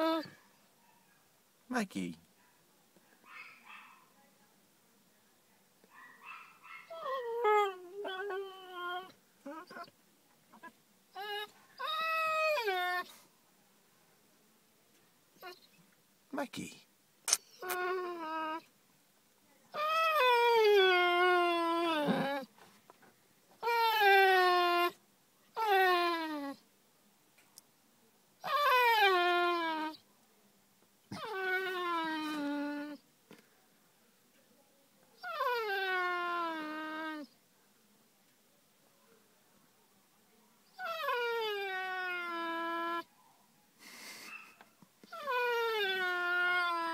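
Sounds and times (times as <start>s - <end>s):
dog whimpering: 0.0s - 0.4s, 6.8s - 9.9s, 10.6s - 13.1s, 17.3s - 18.7s, 19.8s - 22.5s, 23.6s - 25.0s, 25.6s - 26.6s, 28.4s - 30.0s, 31.1s - 33.0s, 35.2s - 37.3s, 40.7s - 43.1s, 44.3s - 46.9s
dog whining: 0.0s - 0.4s, 6.7s - 9.9s, 10.6s - 13.2s, 17.3s - 18.7s, 19.8s - 22.5s, 23.6s - 25.0s, 25.6s - 26.6s, 28.4s - 30.0s, 31.1s - 33.0s, 35.2s - 37.3s, 40.7s - 43.1s, 44.3s - 46.9s
dog whining howls: 6.9s - 9.9s, 35.2s - 37.2s, 45.1s - 46.9s.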